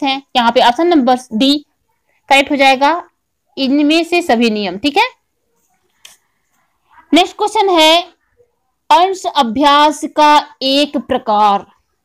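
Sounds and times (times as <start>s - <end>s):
woman speaking: 0.0s - 5.2s, 6.8s - 8.2s, 8.9s - 11.8s.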